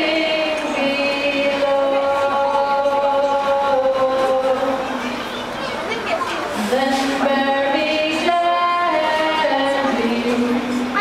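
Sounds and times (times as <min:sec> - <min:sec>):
person singing long held notes: 0:00.0 - 0:04.9.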